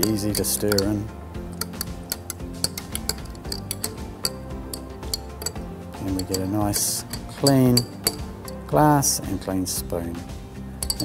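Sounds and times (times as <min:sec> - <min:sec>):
spoon clinking against glass: 0:00.0 - 0:08.7, 0:10.8 - 0:11.0
soft background music: 0:00.0 - 0:11.0.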